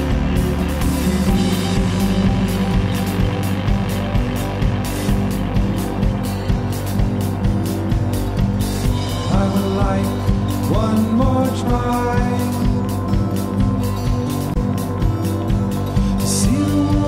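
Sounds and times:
steady drum beat: 0.0 - 17.0
sustained low bass notes: 0.0 - 17.0.

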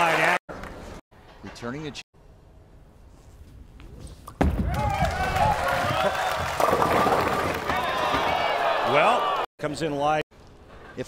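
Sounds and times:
bowling ball rolling: 4.3 - 8.4
bowling pins crashing and clattering: 4.4 - 8.6
crowd reacting loudly: 4.7 - 9.5.

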